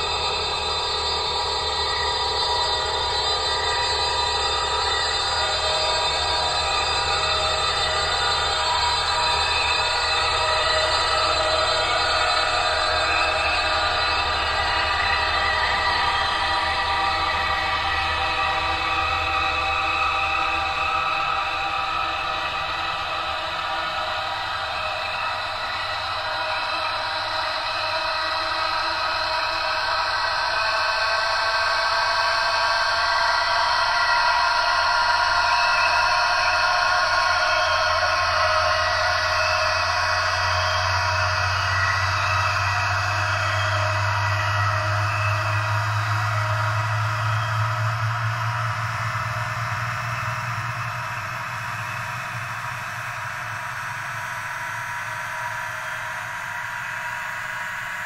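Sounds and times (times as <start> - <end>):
ambient drone music: 0.0 - 58.0.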